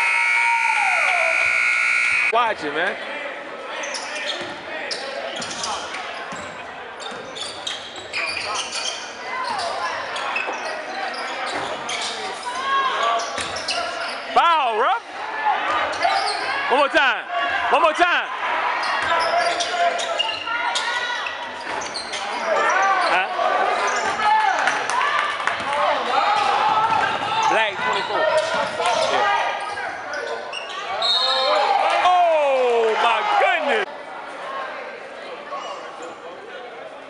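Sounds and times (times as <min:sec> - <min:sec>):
sneakers squeaking: 0:03.8 - 0:14.3, 0:15.8 - 0:16.6, 0:18.8 - 0:24.2, 0:26.9 - 0:31.8.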